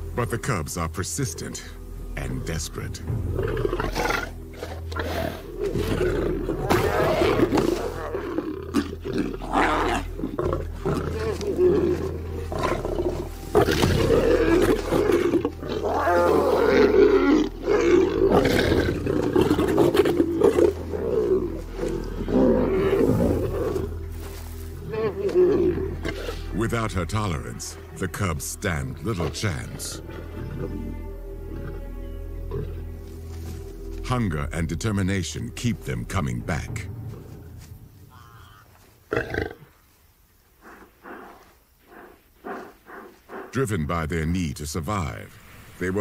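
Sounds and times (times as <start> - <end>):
low music bed: 0.0 - 46.0
lions snarling and growling: 3.3 - 26.6, 29.0 - 31.8, 38.1 - 39.8, 40.6 - 43.6.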